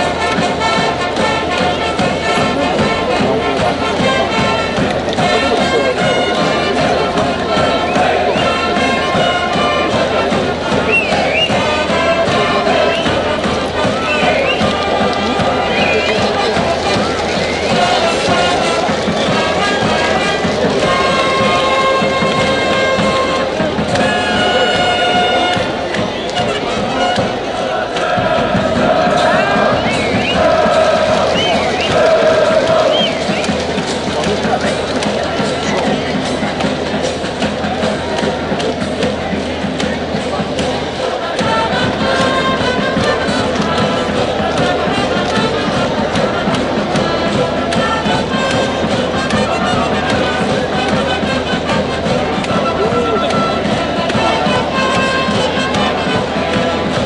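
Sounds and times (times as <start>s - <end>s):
brass band playing: 0.0s - 57.0s
crowd shouting and cheering: 0.0s - 57.0s.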